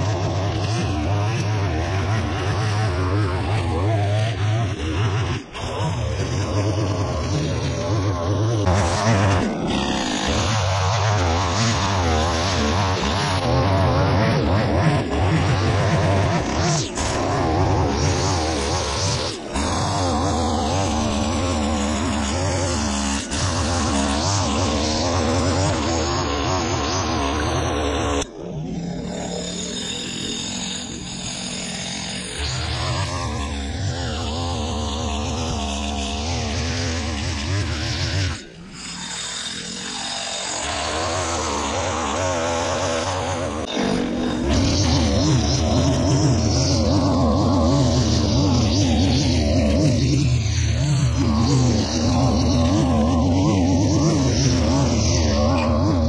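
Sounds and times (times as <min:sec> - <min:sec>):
line trimmer cutting grass: 0:34.2 - 0:49.9.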